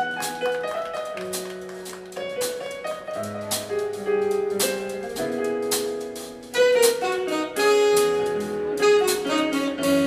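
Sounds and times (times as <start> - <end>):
jazz band playing: 0.0 - 10.0.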